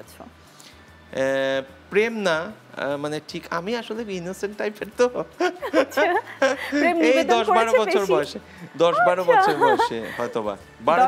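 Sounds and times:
woman talking: 9.0s - 9.8s.

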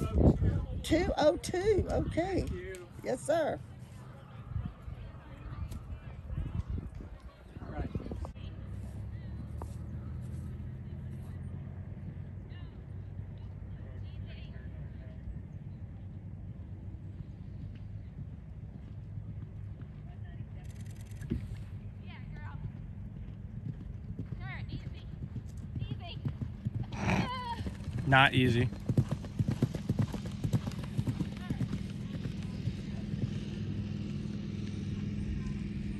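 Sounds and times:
horse galloping on grass: 1.7s - 35.9s.

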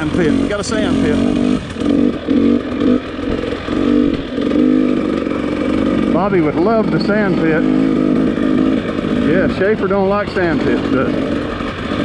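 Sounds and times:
dirt bike engine running: 0.0s - 12.0s.

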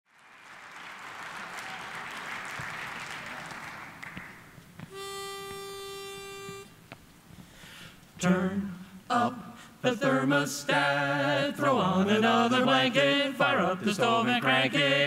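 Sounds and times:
pitch pipe note: 4.9s - 6.8s.

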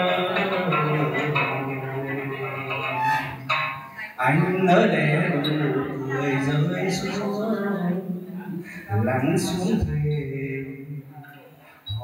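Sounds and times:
man singing long low note: 0.0s - 3.4s
plucked two-string lute: 0.0s - 4.2s.

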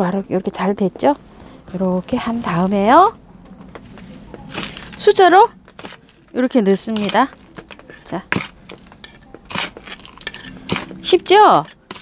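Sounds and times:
spoon scooping gritty soil: 4.2s - 12.0s.

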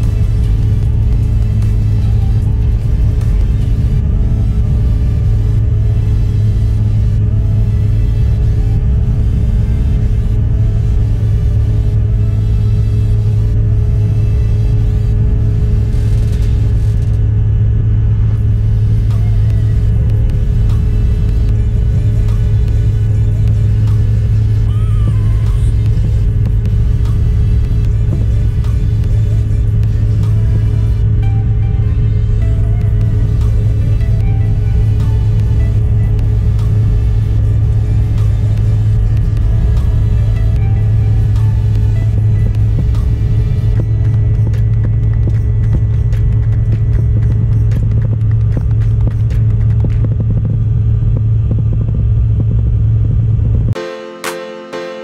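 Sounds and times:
music playing: 0.0s - 17.4s, 18.2s - 50.2s, 53.7s - 55.0s
jet airliner cabin drone: 0.0s - 55.0s.

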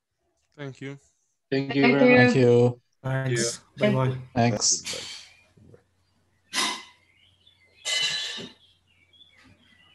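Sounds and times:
person speaking: 1.5s - 4.6s
person puffing breath: 7.8s - 8.6s.

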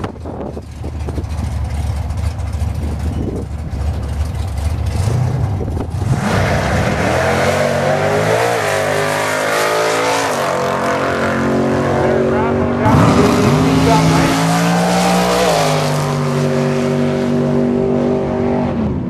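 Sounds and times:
drag race car engine accelerating: 0.0s - 19.0s.

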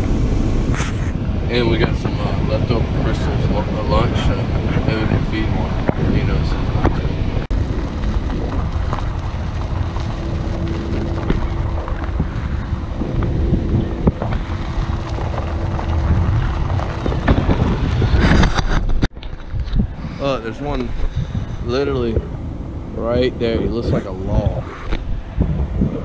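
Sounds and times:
car road rumble: 0.0s - 26.0s
wind buffeting microphone: 0.0s - 26.0s.

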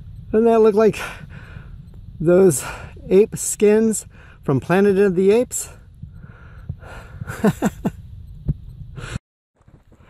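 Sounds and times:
man chuckling: 7.2s - 8.0s
thumping on microphone: 8.4s - 8.7s.

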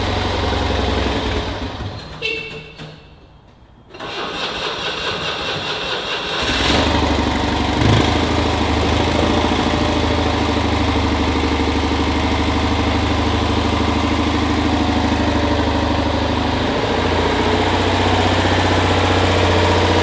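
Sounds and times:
car engine starting and idling: 0.0s - 2.2s, 3.9s - 20.0s.

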